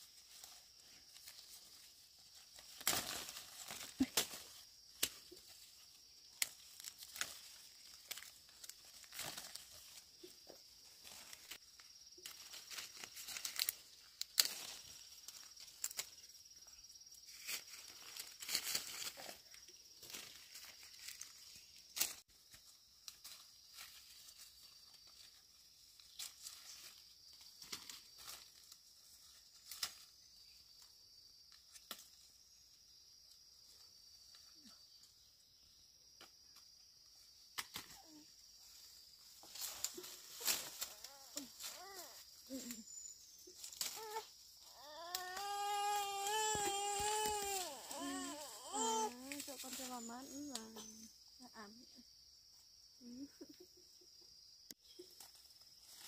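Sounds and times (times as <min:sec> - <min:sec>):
leaves rustling: 0:00.0 - 0:35.2, 0:37.0 - 0:51.2, 0:54.9 - 0:56.0
high insect drone: 0:00.0 - 0:56.0
fruit stems snapping: 0:02.6 - 0:05.4, 0:12.2 - 0:16.2, 0:31.7 - 0:32.2, 0:37.5 - 0:38.0, 0:43.6 - 0:44.2, 0:45.0 - 0:47.6.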